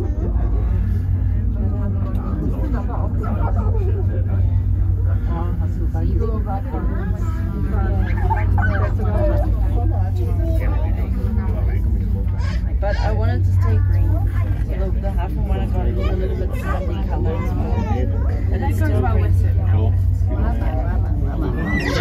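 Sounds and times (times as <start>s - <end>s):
passengers talking indistinctly: 0.0s - 22.0s
steady low rumble: 0.0s - 22.0s.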